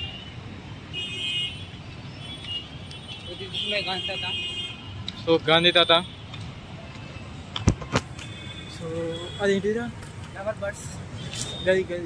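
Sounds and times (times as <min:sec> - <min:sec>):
passing vehicles rumbling: 0:00.0 - 0:12.0.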